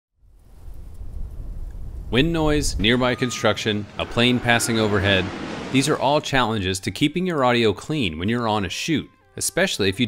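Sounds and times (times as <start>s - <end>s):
wind buffeting microphone: 0.6s - 6.6s.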